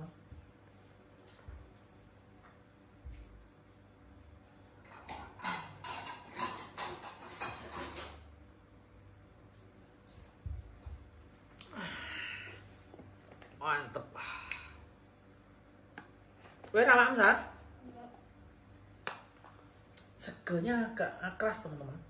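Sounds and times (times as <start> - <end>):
crickets chirping: 0.0 - 22.0
knocks and clatters: 4.8 - 8.3.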